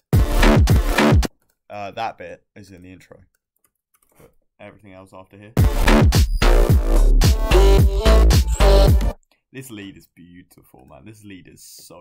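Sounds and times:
electronic bass music: 0:00.1 - 0:01.3, 0:05.6 - 0:09.2.

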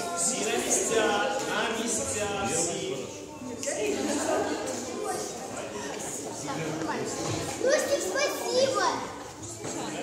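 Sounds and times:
children talking excitedly: 0:00.0 - 0:10.0.

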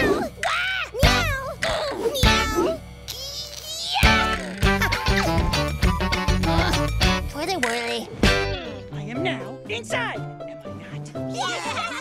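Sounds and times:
children's song music: 0:00.4 - 0:12.0.

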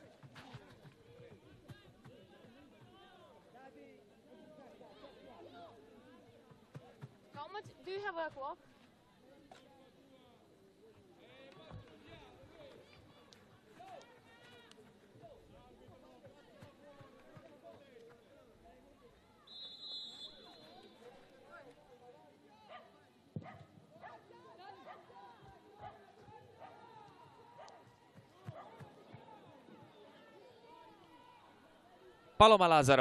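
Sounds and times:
referee's whistle: 0:19.4 - 0:21.0.

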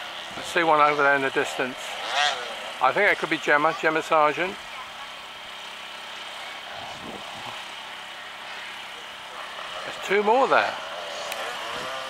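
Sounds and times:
distant motorcycle engine: 0:00.0 - 0:12.0.

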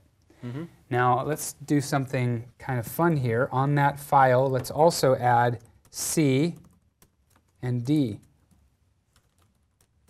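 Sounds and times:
keyboard typing: 0:04.4 - 0:10.0.

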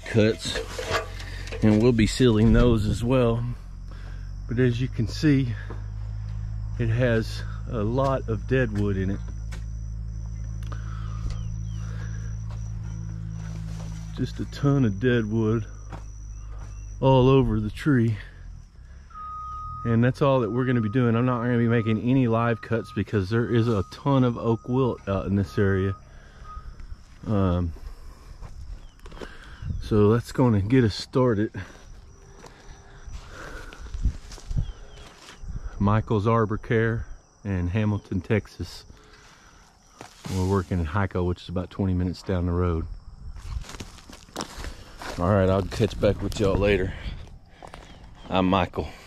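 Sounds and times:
crickets droning: 0:00.0 - 0:49.0
insects chirring: 0:00.0 - 0:49.0
steady low hum: 0:00.0 - 0:49.0
soft low thumps: 0:00.4 - 0:30.1
short chirps: 0:18.9 - 0:19.9.

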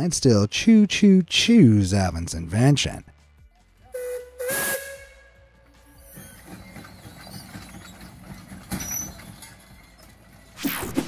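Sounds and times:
steam whistle: 0:03.9 - 0:05.4.

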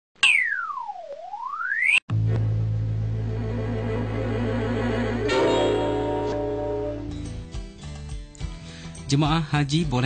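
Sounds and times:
electronic sweep tone: 0:00.2 - 0:02.0, 0:03.2 - 0:07.2.

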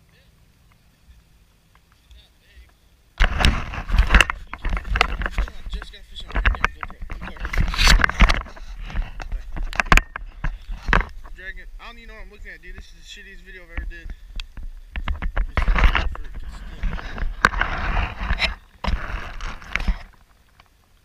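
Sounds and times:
camera handling rumble and knocks: 0:03.2 - 0:11.4, 0:13.7 - 0:20.7.

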